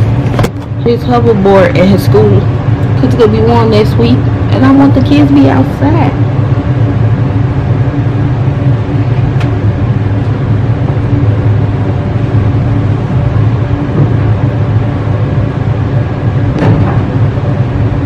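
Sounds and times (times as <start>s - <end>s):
laundry machine humming: 0.0s - 18.0s.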